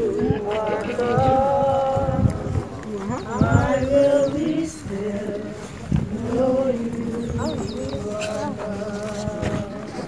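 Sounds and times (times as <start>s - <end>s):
group singing a slow hymn: 0.0s - 10.0s.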